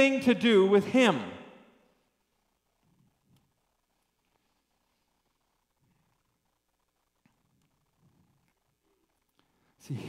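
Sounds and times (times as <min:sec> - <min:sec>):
man speaking: 0:00.0 - 0:01.6, 0:09.8 - 0:10.0.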